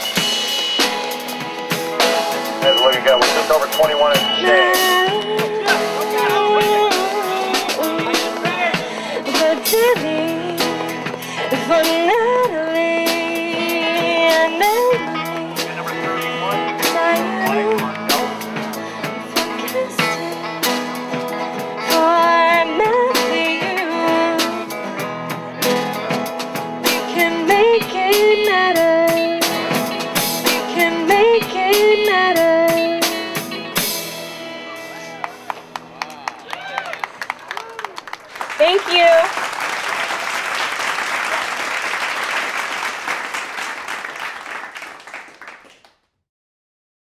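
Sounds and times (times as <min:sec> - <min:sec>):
electric guitar: 0:00.0 - 0:37.0
drums: 0:00.0 - 0:44.0
audience applause: 0:02.7 - 0:06.3, 0:35.1 - 0:46.0
woman singing: 0:04.4 - 0:15.7, 0:16.7 - 0:18.6, 0:19.4 - 0:21.0, 0:21.8 - 0:24.9, 0:26.9 - 0:29.9, 0:30.5 - 0:33.5.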